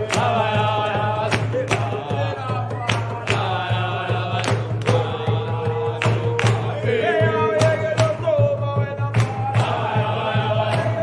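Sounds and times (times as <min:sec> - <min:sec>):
hand claps: 0:00.0 - 0:11.0
hand drum beat: 0:00.0 - 0:11.0
men singing a chant: 0:00.0 - 0:11.0.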